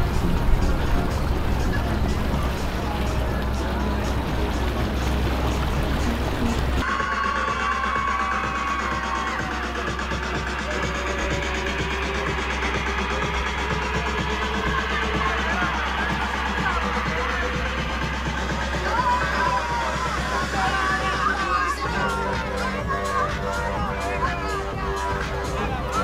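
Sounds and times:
music with deep bass and fast beat: 0.0s - 26.0s.

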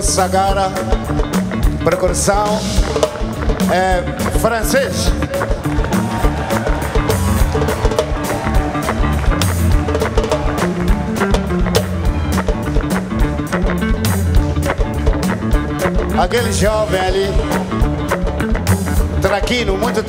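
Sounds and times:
bass line: 0.0s - 20.0s
drums and percussion beat: 0.0s - 20.0s
live band instrumental groove: 0.0s - 20.0s.

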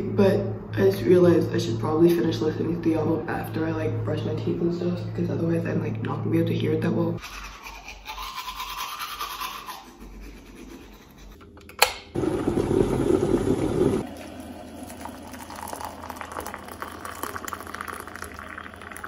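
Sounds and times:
teeth brushing with toothbrush: 7.2s - 11.4s
sharp click: 11.6s - 12.1s
hot water pouring into mug: 12.2s - 19.0s.

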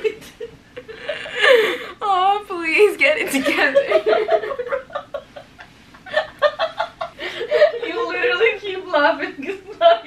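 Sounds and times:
faint breaths: 0.9s - 2.0s, 7.1s - 7.8s.

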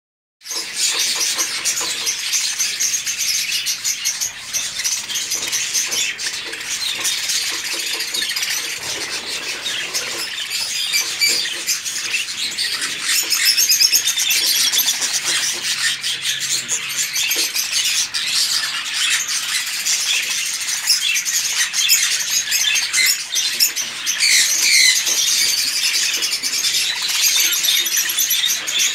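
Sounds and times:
budgerigars chattering: 0.4s - 28.9s.

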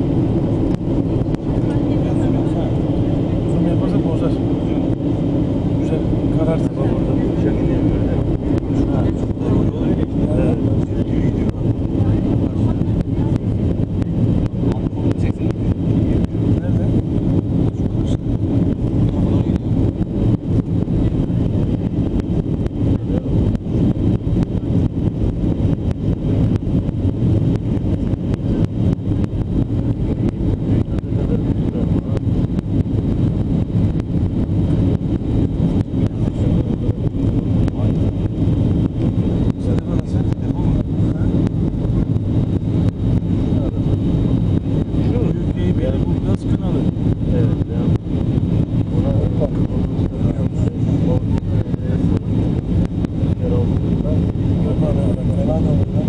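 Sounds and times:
airliner engine drone in cabin: 0.0s - 56.0s.

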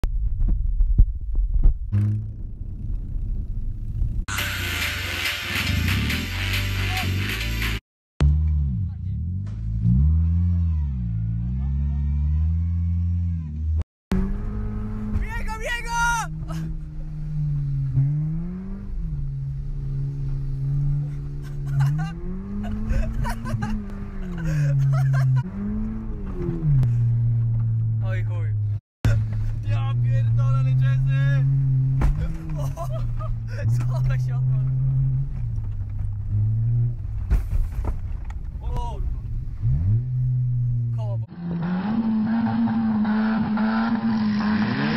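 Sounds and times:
car engine revving: 1.9s - 15.3s, 16.3s - 44.9s.

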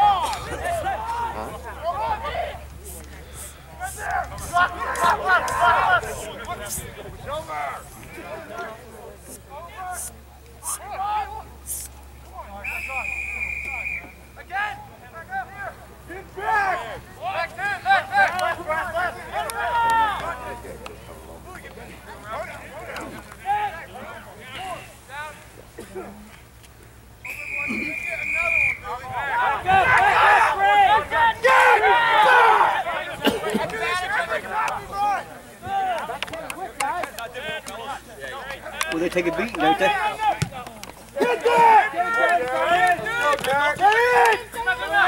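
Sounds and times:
people shouting and calling: 0.0s - 26.2s, 27.2s - 45.0s.

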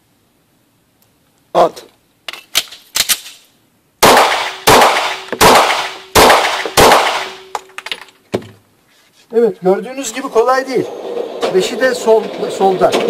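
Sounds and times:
pistol shots echoing indoors: 4.0s - 7.5s.

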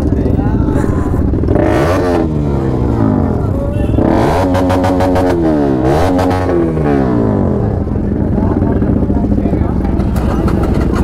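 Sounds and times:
motorcycle engine idling: 0.0s - 4.9s, 6.8s - 11.0s
crowd chatter: 0.0s - 11.0s.

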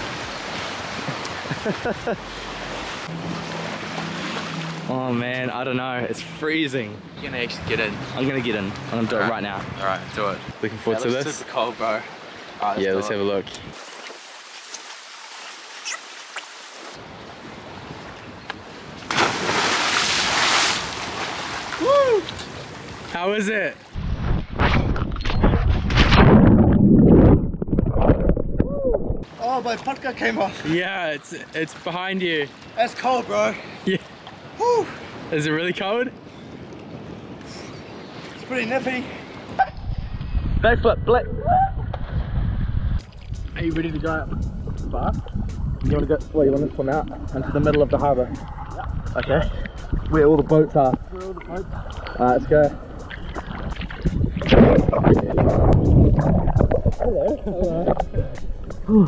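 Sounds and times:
seawater splashing and churning: 0.0s - 6.8s, 13.7s - 23.2s, 48.3s - 58.9s
rushing wash of water: 0.0s - 18.2s, 18.9s - 23.2s
man exclaiming: 21.8s - 22.3s, 34.6s - 35.0s
wind rumbling on microphone: 24.0s - 29.4s, 39.4s - 59.0s.

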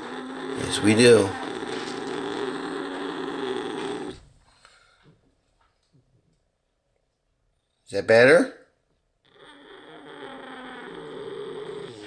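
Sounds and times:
cat purring with growl: 0.0s - 4.3s, 9.3s - 12.0s.

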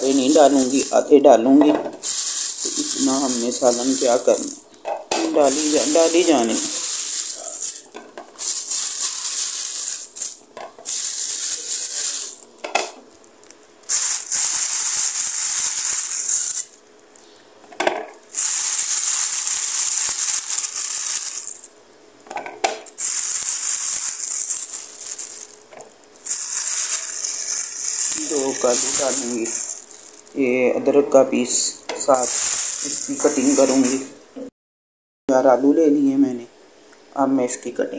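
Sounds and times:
plastic bag crinkling: 0.0s - 1.2s, 2.0s - 4.6s, 5.2s - 12.6s, 13.4s - 16.8s, 18.3s - 21.7s, 23.0s - 30.4s, 32.0s - 34.1s.

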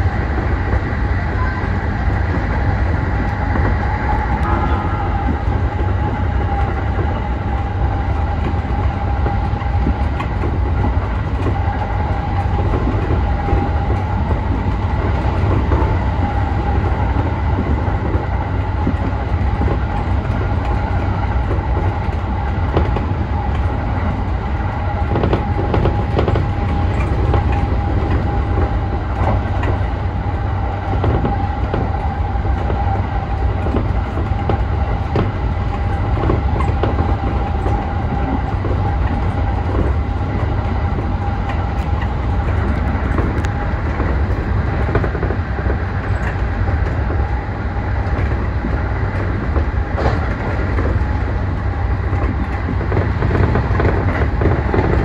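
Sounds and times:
electric train rumble: 0.0s - 55.0s
wheels clicking over rail joints: 2.2s - 55.0s
steady high tone: 4.0s - 5.9s.

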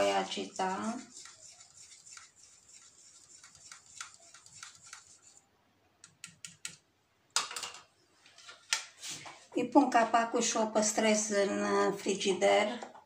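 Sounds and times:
spatula scraping in a jar: 0.0s - 5.5s.

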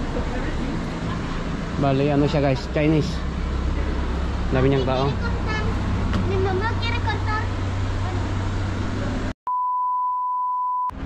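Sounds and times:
passers-by voices: 0.0s - 9.3s
traffic rumble: 0.0s - 9.4s.

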